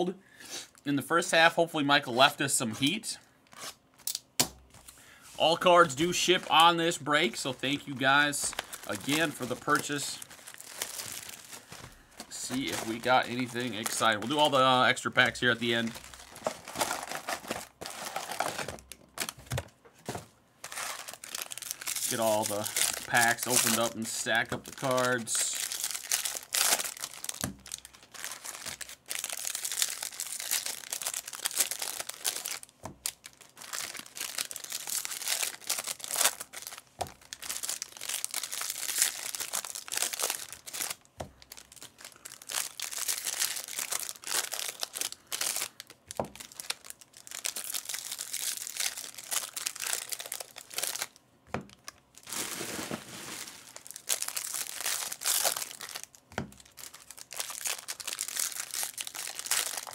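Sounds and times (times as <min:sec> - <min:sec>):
foil wrappers crinkling and tearing: 0:04.8 - 0:59.9.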